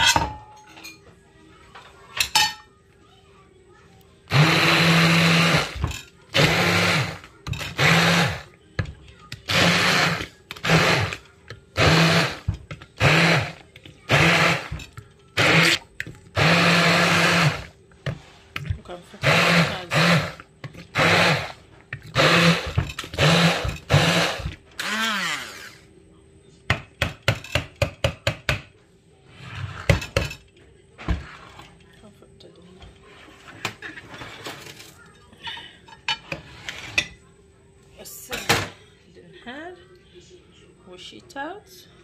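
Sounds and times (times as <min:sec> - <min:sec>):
stick blender motor bursts: 0:09.5 - 0:11.2, 0:11.8 - 0:14.7, 0:19.2 - 0:25.8.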